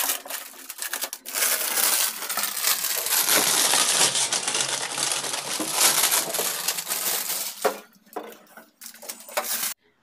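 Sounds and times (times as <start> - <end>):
plastic wrapping crinkling: 0.0 - 9.8.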